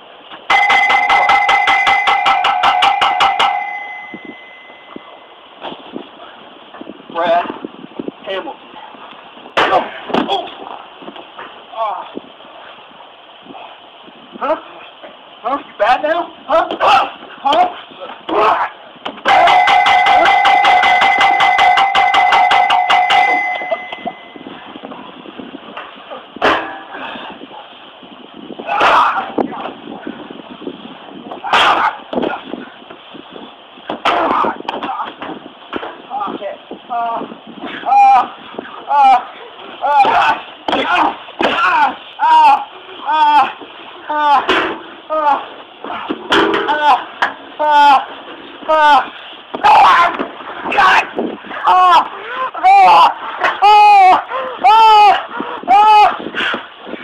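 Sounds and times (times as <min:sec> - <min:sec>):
bell rung rapidly: 0:00.5 - 0:05.0, 0:19.3 - 0:24.4.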